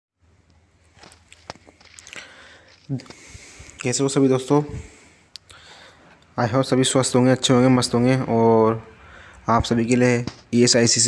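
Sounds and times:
low steady hum: 0:00.2 - 0:11.0.

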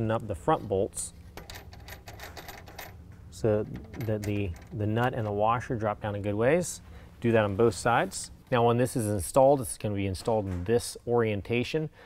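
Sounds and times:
metallic clicking of nut loosening: 0:01.2 - 0:05.4.

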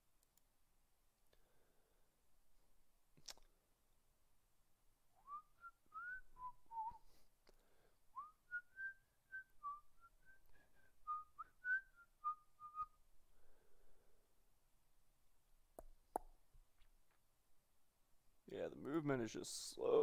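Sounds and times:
person whistling a tune: 0:05.2 - 0:07.2, 0:08.2 - 0:13.0.

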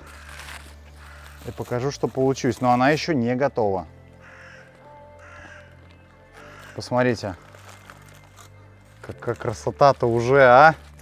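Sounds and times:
faint bird calling: 0:04.2 - 0:07.0.

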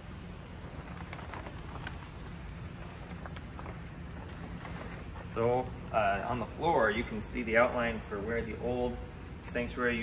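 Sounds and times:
plastic sheeting crackling: 0:00.0 - 0:07.7
low background noise: 0:00.0 - 0:10.0.

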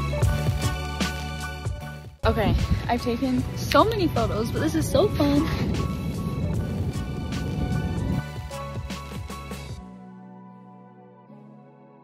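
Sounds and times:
background music with sustained tones: 0:00.0 - 0:12.0
wind buffeting microphone: 0:02.2 - 0:08.5.

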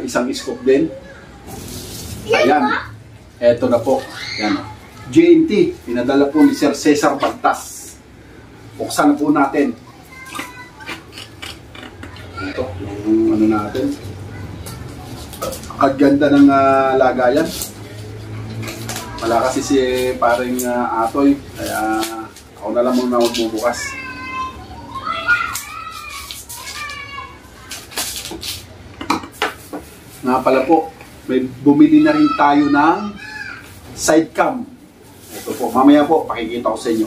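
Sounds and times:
blade scraping plastic wrapping: 0:25.5 - 0:28.7
plastic parcel clicks and rustles: 0:25.5 - 0:28.7.

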